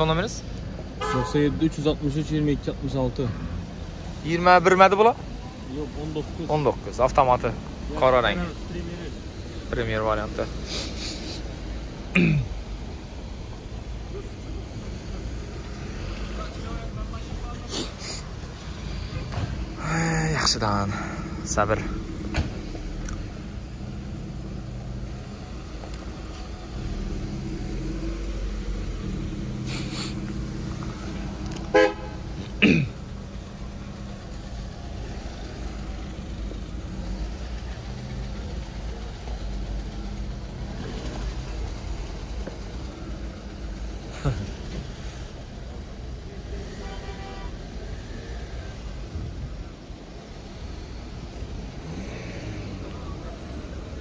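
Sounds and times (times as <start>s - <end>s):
car engines humming: 0.0s - 54.0s
distant voices: 0.0s - 54.0s
car horns tooting: 1.0s - 1.8s, 31.5s - 33.1s, 46.6s - 48.2s.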